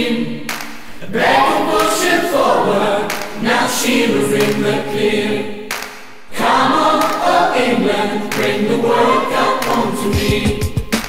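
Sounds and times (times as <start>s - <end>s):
choir singing anthem: 0.0s - 11.0s.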